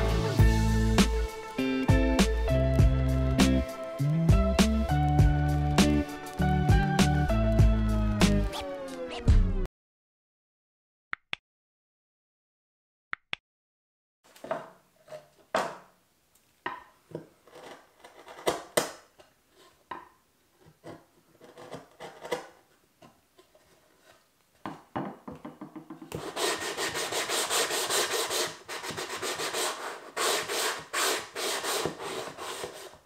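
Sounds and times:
chisel scraping wood: 0:17.1 - 0:18.9, 0:20.6 - 0:24.3, 0:25.9 - 0:33.0
hand-sanding wood: 0:26.1 - 0:33.0.

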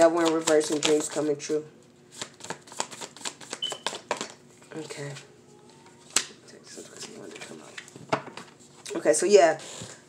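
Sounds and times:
cards being shuffled: 0:02.1 - 0:04.4.

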